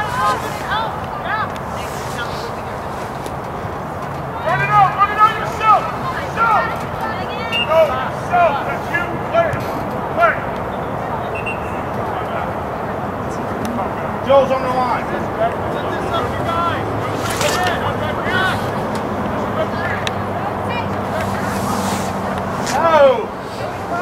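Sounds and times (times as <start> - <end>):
outdoor background noise: 0.0 - 24.0
distant shouts and calls: 3.8 - 24.0.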